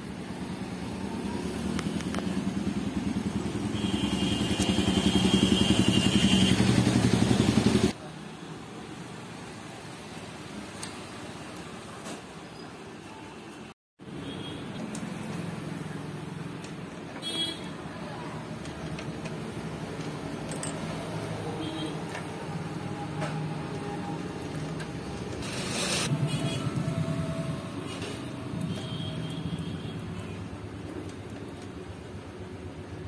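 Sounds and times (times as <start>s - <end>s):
background traffic noise: 0.0s - 33.0s.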